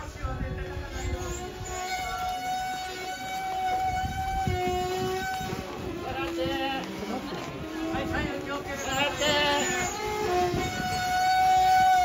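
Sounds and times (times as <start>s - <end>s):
street crowd hubbub: 0.0s - 12.0s
wind instrument held note: 1.4s - 6.0s.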